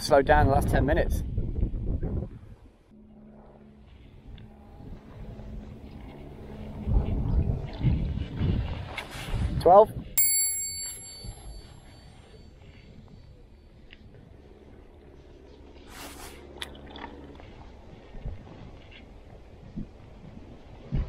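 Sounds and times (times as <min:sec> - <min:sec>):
bell-like ring: 0:10.2 - 0:12.8.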